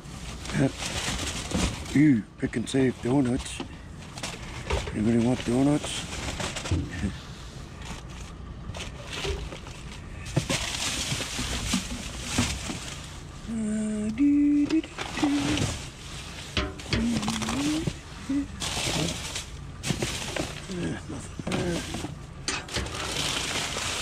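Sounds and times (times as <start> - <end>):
plastic bags rustling: 0.0 - 24.0
knocks and clunks of rubbish: 0.3 - 7.2, 7.8 - 13.2, 14.2 - 24.0
low hums or voice sounds: 13.3 - 16.1, 16.7 - 19.5, 20.4 - 22.8.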